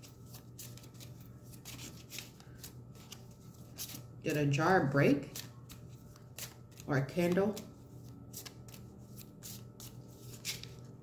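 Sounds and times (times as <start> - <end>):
cards being shuffled: 0.0 - 4.1, 5.2 - 11.0.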